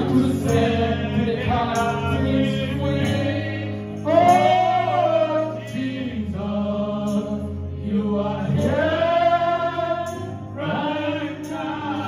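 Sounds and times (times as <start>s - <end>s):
group singing gospel song: 0.0s - 12.0s.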